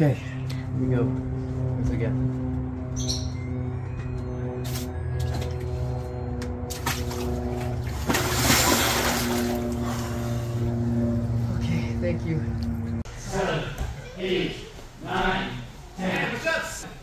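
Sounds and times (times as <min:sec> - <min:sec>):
water sloshing and splashing: 0:06.5 - 0:10.6.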